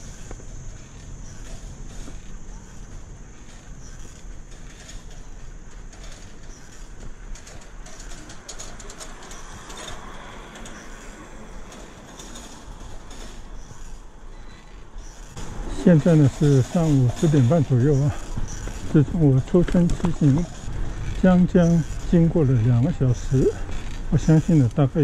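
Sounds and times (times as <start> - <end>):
wind and road rumble: 0.0 - 25.0
birds calling: 13.0 - 25.0.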